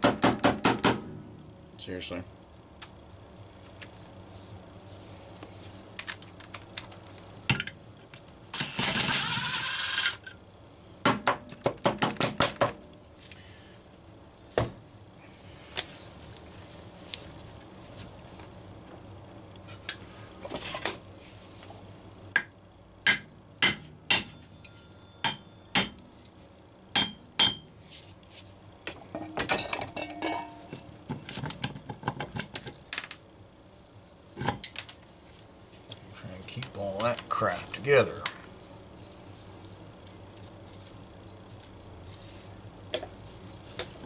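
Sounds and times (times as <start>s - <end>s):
hammer tapping metal cylinder: 23.1s - 26.1s, 27.0s - 27.7s.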